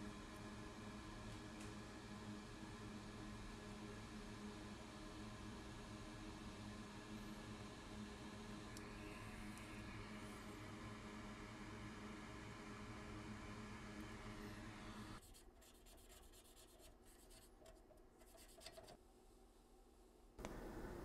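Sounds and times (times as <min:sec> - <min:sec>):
faint room hum: 0:00.0 - 0:21.0
faint rapid scratching: 0:15.2 - 0:19.0.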